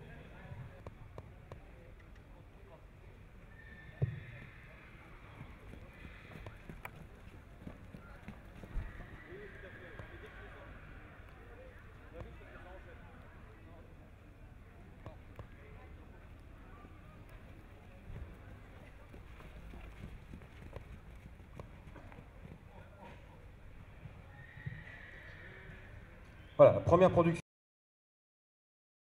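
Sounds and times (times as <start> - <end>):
murmur of crowd voices: 0.0 - 27.4
muffled hoofbeats on grass: 3.8 - 11.2, 16.8 - 25.9.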